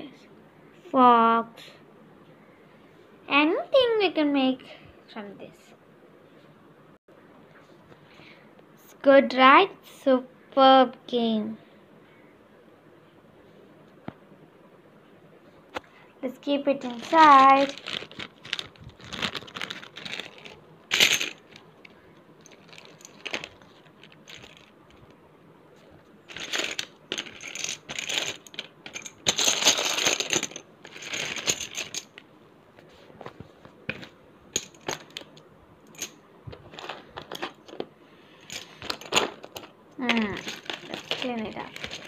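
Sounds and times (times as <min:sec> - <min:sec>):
plastic letter tiles clattering: 0:38.8 - 0:42.0.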